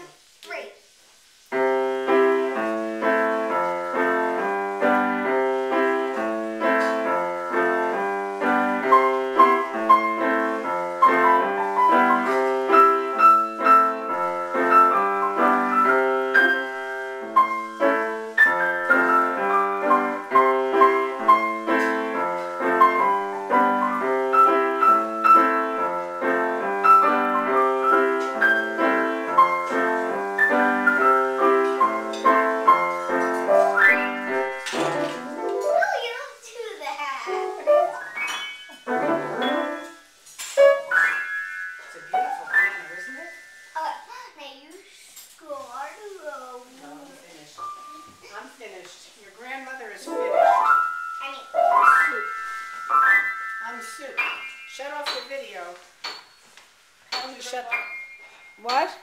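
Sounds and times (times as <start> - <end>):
piano playing: 1.5 - 36.6, 37.2 - 44.2, 46.6 - 48.6, 49.3 - 59.0.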